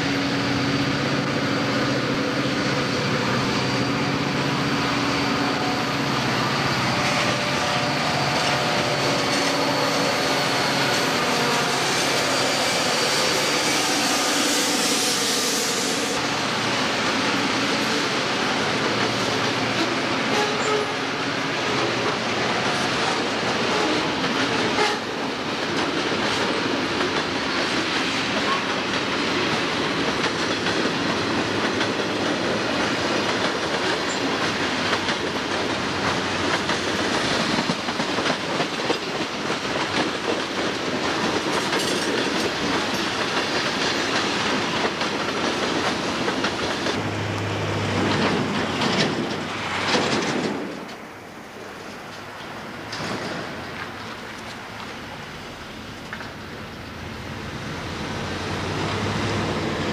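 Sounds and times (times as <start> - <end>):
train wheels rolling on rail: 0.0 - 59.9.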